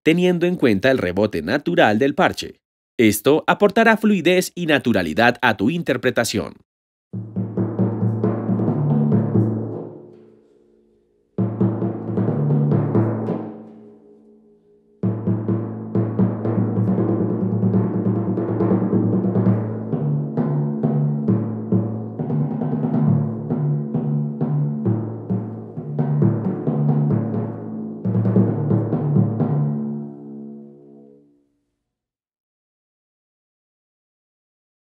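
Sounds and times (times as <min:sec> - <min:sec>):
timpani strokes: 0:07.2 - 0:31.2.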